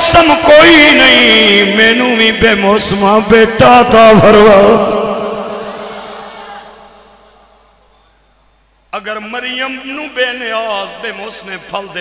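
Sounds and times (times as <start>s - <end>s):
man chanting over loudspeaker: 0.0s - 5.7s, 8.9s - 12.0s.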